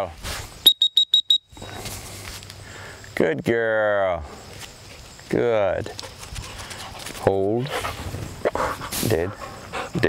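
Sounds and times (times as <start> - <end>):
short high electronic beeps: 0.6 - 1.6.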